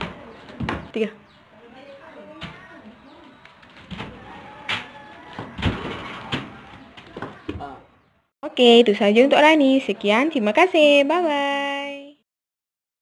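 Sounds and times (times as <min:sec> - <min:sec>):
faint voices: 0:01.5 - 0:08.1.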